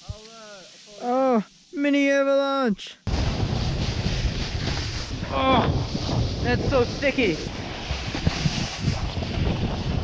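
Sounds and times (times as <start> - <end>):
snowboard sliding through snow: 0.0 - 2.4, 3.1 - 10.0
wind on microphone: 3.1 - 10.0.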